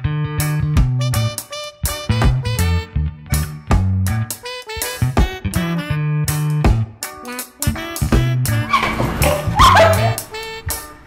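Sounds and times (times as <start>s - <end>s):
upbeat comedy music: 0.4s - 11.0s
short high yelping cry: 8.7s - 10.3s.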